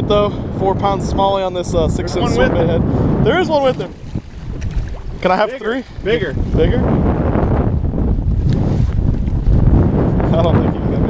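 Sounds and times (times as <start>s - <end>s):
strong wind buffeting microphone: 0.0s - 11.0s.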